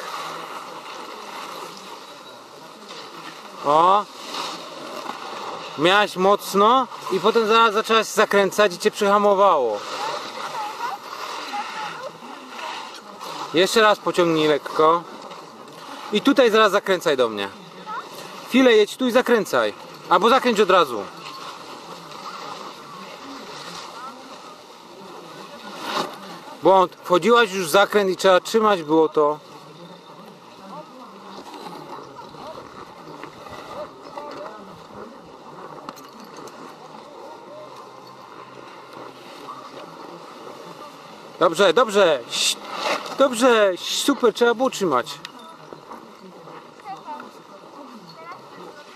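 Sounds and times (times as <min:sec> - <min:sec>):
faint distant voices: 0:00.0 - 0:48.9.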